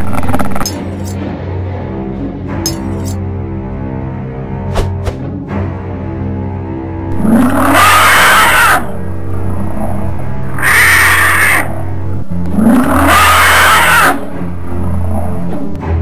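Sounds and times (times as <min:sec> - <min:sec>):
droning horror music: 0:00.0 - 0:16.0
monster roar: 0:07.2 - 0:11.9, 0:12.5 - 0:14.5.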